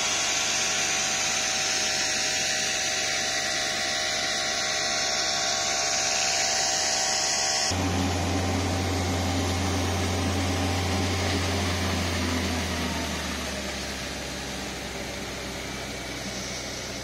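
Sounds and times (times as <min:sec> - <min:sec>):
hose jet spraying water: 0:00.0 - 0:17.0
pump engine humming: 0:00.0 - 0:17.0.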